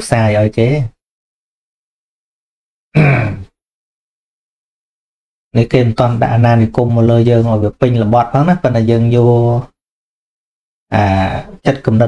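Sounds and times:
man grunting: 3.0 - 3.5.

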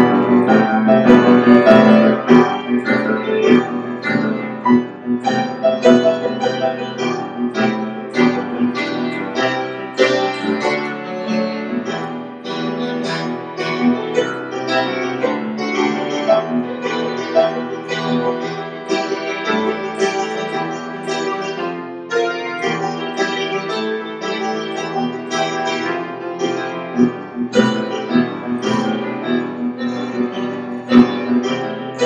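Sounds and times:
piano chords and melody: 0.0 - 32.0.

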